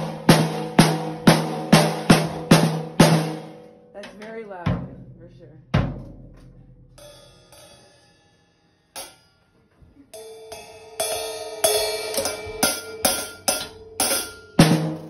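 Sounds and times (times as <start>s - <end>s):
drum strikes: 0.0s - 8.0s, 10.2s - 15.0s
deep drum hit: 4.7s - 6.9s.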